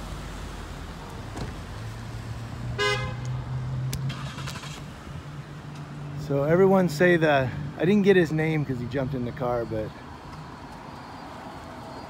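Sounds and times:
car engine humming: 0:00.0 - 0:06.6
car horn toot: 0:02.8 - 0:03.3.

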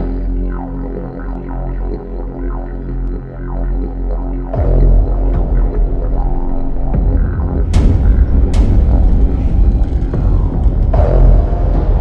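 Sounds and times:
didgeridoo drone: 0:00.0 - 0:12.0.

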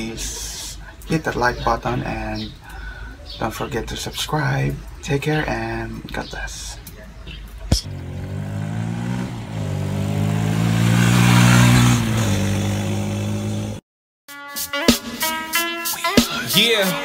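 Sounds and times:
motorcycle engine revving: 0:07.7 - 0:13.8
music: 0:14.3 - 0:17.0.

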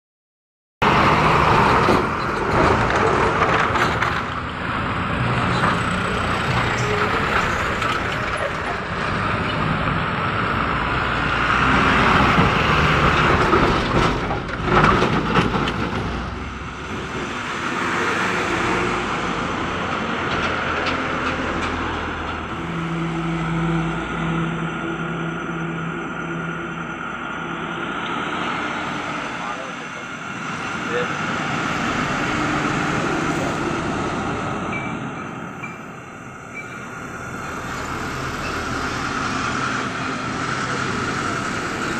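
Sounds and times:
vehicles passing: 0:00.8 - 0:41.9.

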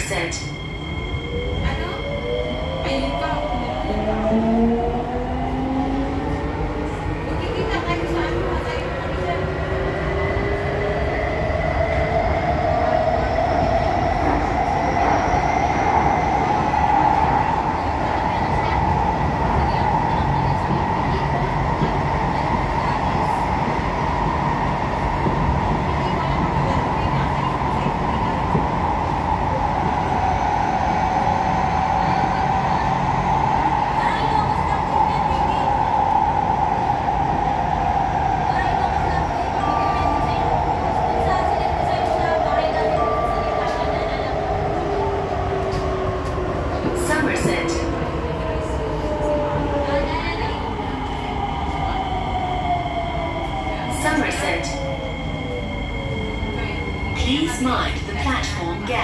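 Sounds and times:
train wheels rumbling on rails: 0:01.5 - 0:59.0.

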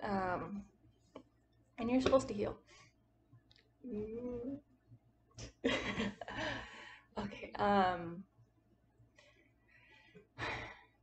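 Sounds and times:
faint breaths: 0:06.3 - 0:07.2, 0:09.1 - 0:11.0.

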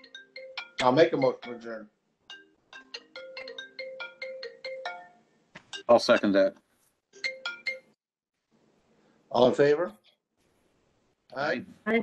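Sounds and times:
phone ringtone melody: 0:00.0 - 0:06.3, 0:07.2 - 0:08.0.

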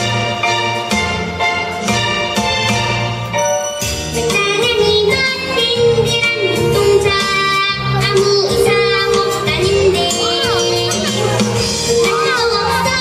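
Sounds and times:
band accompaniment with bass: 0:00.0 - 0:13.0
girl singing: 0:04.2 - 0:13.0.

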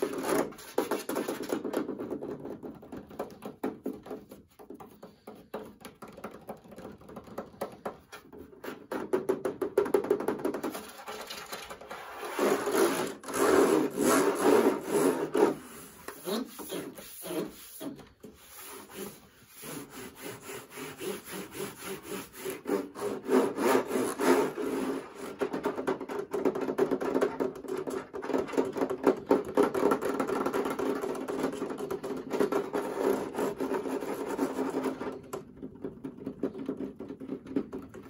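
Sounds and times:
fingers scratching plastic casing: 0:00.0 - 0:38.0.

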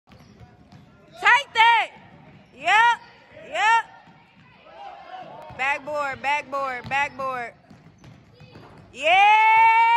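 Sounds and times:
basketball dribbled on hardwood: 0:05.4 - 0:09.6.

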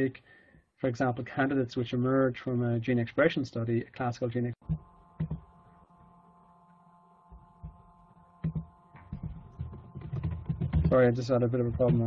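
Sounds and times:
faint steady whine: 0:00.0 - 0:12.0
thumps and clicks at a desk: 0:04.6 - 0:05.6, 0:07.3 - 0:12.0.

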